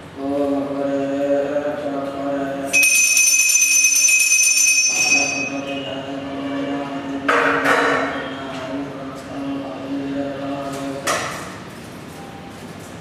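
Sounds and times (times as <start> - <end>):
metal bell ringing: 2.7 - 5.9.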